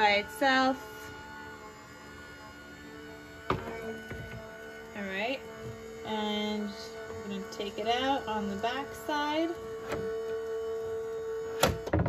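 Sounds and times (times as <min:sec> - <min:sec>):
die-cutting machine motor humming: 0:00.0 - 0:12.0.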